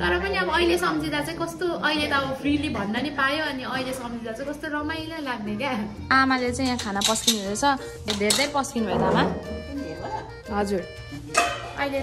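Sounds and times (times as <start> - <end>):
background music: 0.0 - 12.0
steel plates and spoon clinking: 6.4 - 9.2, 11.3 - 11.8.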